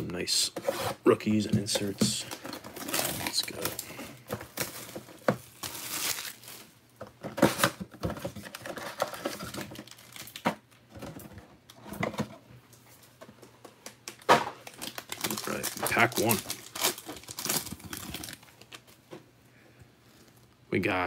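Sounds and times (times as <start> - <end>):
foil packs rustling: 1.6 - 10.5, 14.1 - 19.0
shrink wrap tearing and crinkling: 2.2 - 6.8, 8.4 - 10.8, 13.9 - 19.0.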